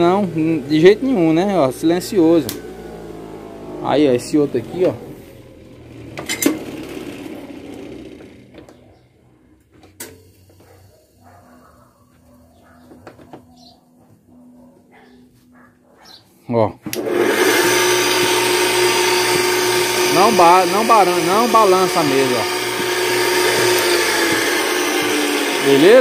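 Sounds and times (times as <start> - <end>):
bench grinder humming and whining: 0.0 - 8.8, 16.9 - 26.0.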